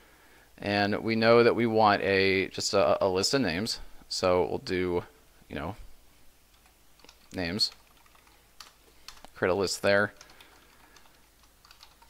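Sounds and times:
keyboard typing: 6.5s - 9.4s, 10.2s - 12.0s.

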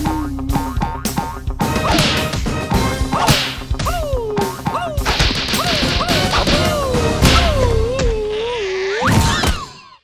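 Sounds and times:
background music: 0.0s - 8.4s
cartoon squeals: 4.7s - 10.0s.

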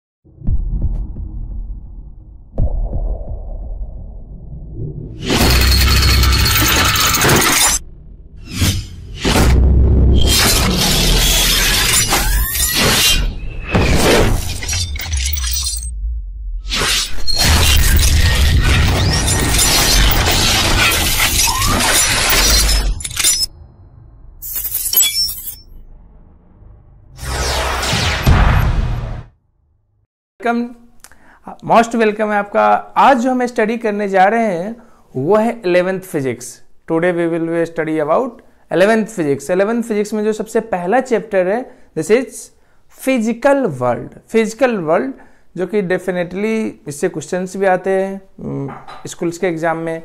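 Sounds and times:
deep booming hits: 0.2s - 5.4s, 7.8s - 10.2s, 25.8s - 29.4s
music: 0.3s - 2.9s
glass shattering: 5.2s - 7.8s, 10.3s - 15.9s, 17.3s - 23.5s, 24.4s - 25.8s
high glass tinkling: 24.4s - 25.7s
harsh crash of noise: 25.8s - 29.3s.

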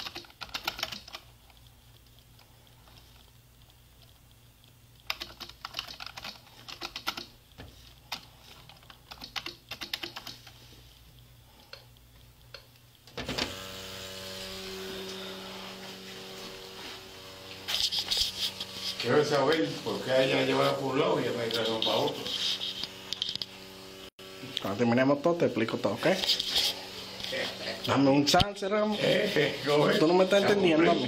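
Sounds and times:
keyboard typing: 0.0s - 1.6s, 5.0s - 7.4s, 8.1s - 10.6s
steady hum: 0.0s - 31.0s
person speaking: 17.7s - 22.8s, 24.4s - 31.0s.

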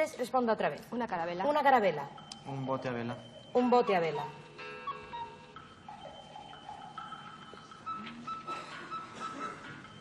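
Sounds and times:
soft game show music: 0.0s - 10.0s.

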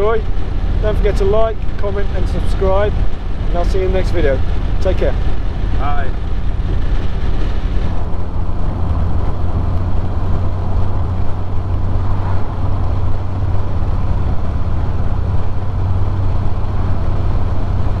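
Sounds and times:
car engine running: 0.0s - 18.0s
road noise: 0.0s - 18.0s
wind noise: 0.0s - 18.0s.

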